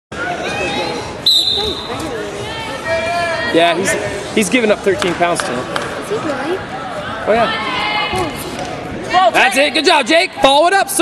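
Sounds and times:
referee's whistle: 0.7 - 2.0.

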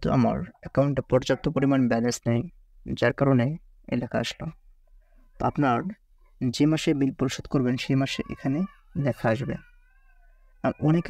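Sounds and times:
person talking: 0.0 - 4.6, 5.4 - 9.7, 10.6 - 11.0.

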